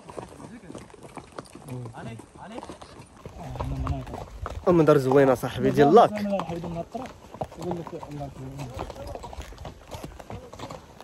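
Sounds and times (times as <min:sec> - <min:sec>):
horse hooves on dirt: 0:00.0 - 0:11.0.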